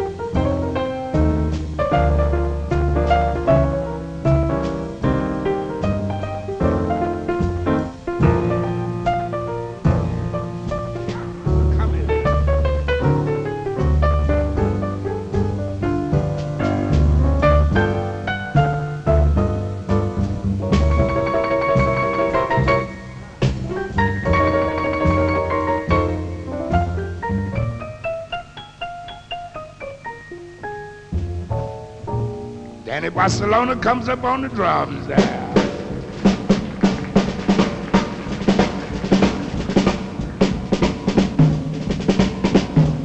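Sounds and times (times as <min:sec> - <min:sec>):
double bass: 0:00.0 - 0:29.3, 0:30.2 - 0:43.0
jazz piano solo: 0:00.0 - 0:43.0.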